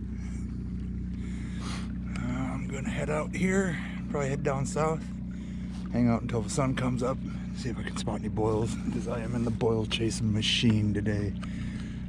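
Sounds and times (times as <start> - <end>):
breathy puff: 1.2 - 2.0.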